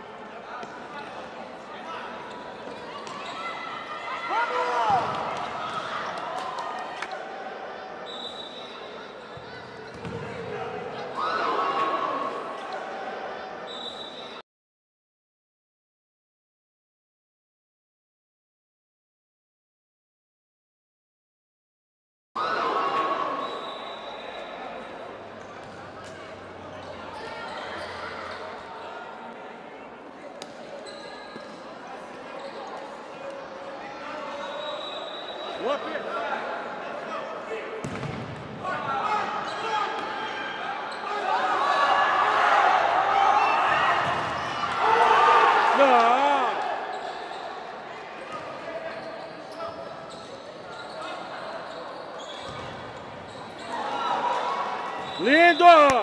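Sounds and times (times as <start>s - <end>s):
indistinct voices in sports hall: 0.0s - 14.4s, 22.4s - 56.0s
loud shouts: 3.1s - 7.6s, 38.6s - 47.0s, 53.7s - 56.0s
ball kicked on indoor court: 4.9s - 5.9s, 9.9s - 10.5s, 37.8s - 38.6s, 44.0s - 44.4s.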